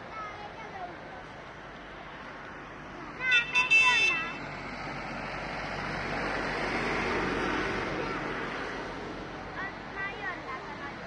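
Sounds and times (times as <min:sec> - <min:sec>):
road noise: 0:00.0 - 0:11.0
horn honking: 0:03.2 - 0:04.4.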